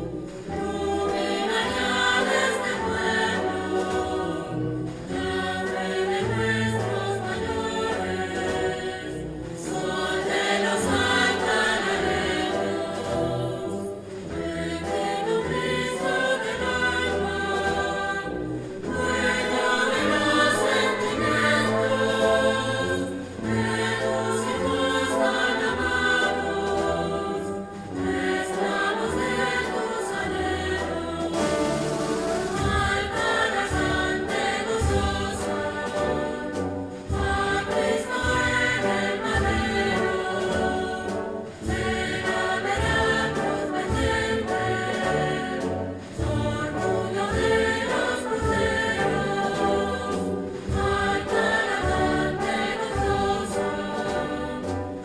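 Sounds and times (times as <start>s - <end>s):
wind band playing slow march: 0.0s - 55.0s.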